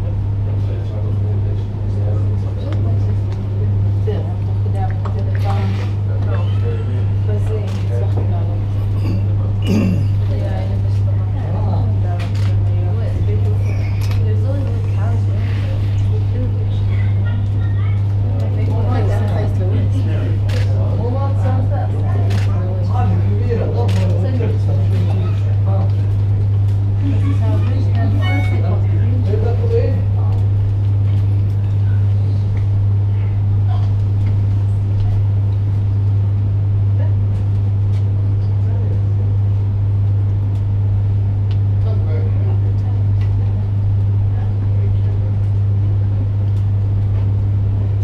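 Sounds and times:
faint background voices: 0:00.0 - 0:32.5
steady low hum: 0:00.0 - 0:48.0.

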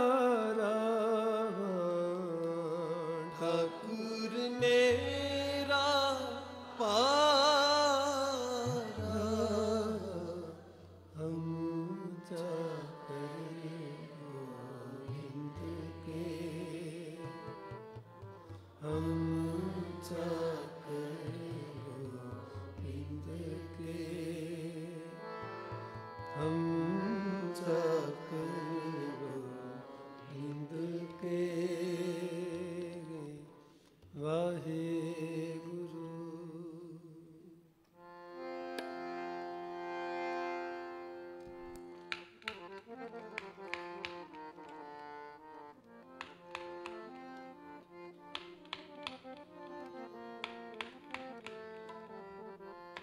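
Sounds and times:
man singing a hymn: 0:00.0 - 0:10.6, 0:11.2 - 0:17.4, 0:18.8 - 0:25.1, 0:26.4 - 0:33.6, 0:34.2 - 0:37.4
harmonium melody over drone: 0:00.0 - 0:37.2, 0:38.0 - 0:53.0.

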